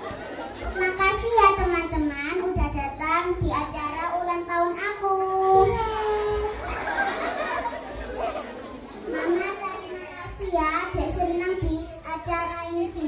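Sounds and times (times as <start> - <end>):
murmur of audience voices: 0.0 - 13.0.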